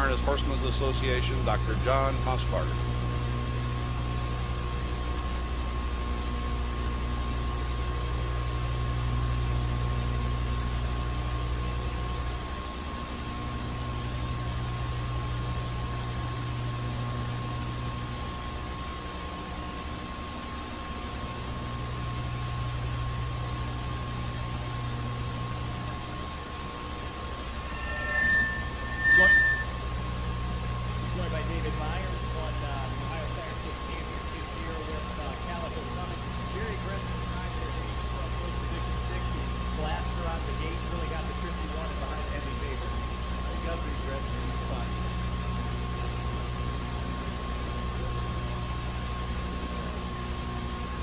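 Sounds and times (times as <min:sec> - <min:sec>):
constant hum: 0:00.0 - 0:05.3, 0:21.7 - 0:39.2
low drone: 0:27.5 - 0:30.0
tape hiss: 0:27.5 - 0:30.0
short high beep with click: 0:27.6 - 0:29.8.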